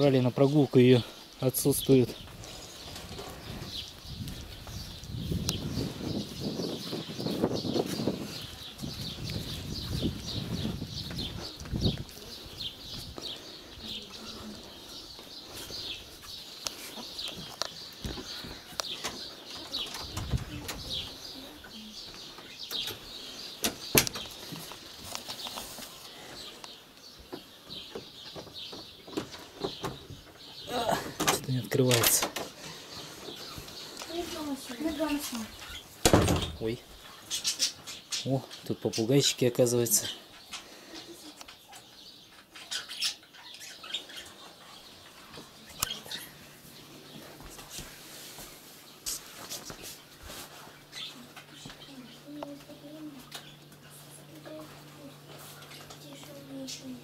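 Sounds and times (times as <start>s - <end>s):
small birds chirping: 0.0s - 57.0s
budgerigars chirping and squawking: 31.5s - 46.8s.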